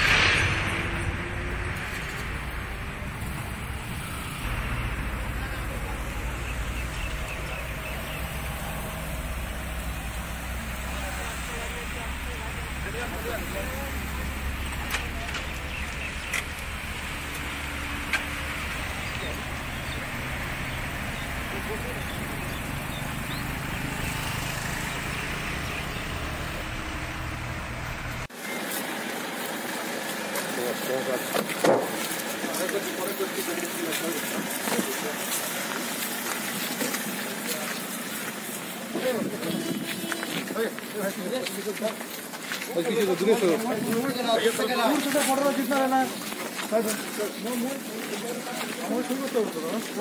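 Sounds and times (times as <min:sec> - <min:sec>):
indistinct voices talking: 0:00.0 - 0:50.0
traffic rumble: 0:00.0 - 0:50.0
people talking in background: 0:29.8 - 0:50.0.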